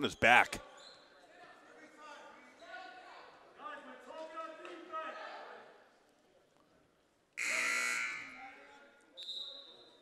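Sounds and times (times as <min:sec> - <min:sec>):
scoreboard horn: 0:07.4 - 0:08.4.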